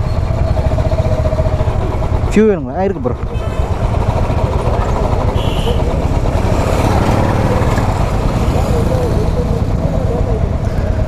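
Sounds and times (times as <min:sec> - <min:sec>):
motorcycle engines idling: 0:00.0 - 0:11.0.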